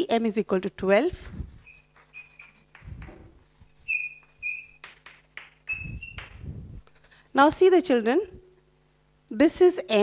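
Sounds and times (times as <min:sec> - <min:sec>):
chalk squeaking on blackboard: 0:01.6 - 0:06.4
chalk tapping and scratching: 0:01.6 - 0:06.4.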